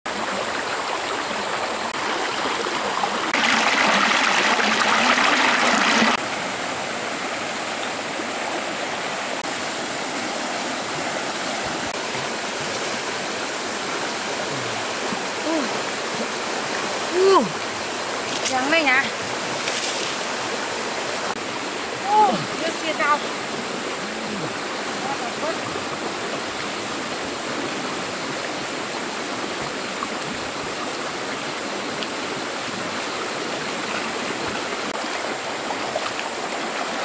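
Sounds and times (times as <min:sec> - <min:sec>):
river rushing over rapids: 0:00.1 - 0:37.0
person making vocal sounds: 0:14.4 - 0:15.9, 0:17.1 - 0:17.6, 0:22.0 - 0:22.6, 0:24.0 - 0:24.6.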